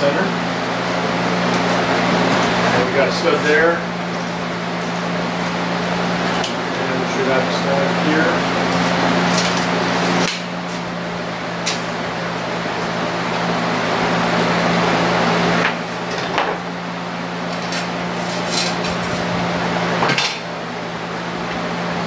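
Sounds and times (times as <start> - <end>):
machine hum: 0.0 - 22.0.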